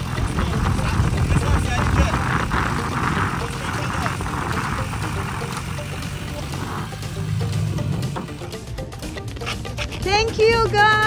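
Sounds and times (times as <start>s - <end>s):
motorcycle engine rumbling: 0.0s - 11.0s
road and wind noise: 0.0s - 11.0s.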